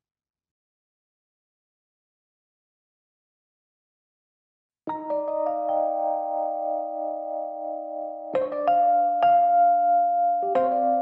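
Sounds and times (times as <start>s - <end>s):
electric keyboard chord ringing: 4.9s - 11.0s.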